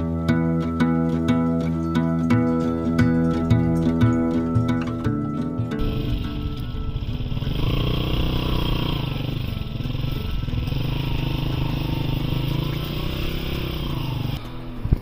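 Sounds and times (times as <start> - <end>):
small motorcycle engine in mud: 2.9 - 15.0.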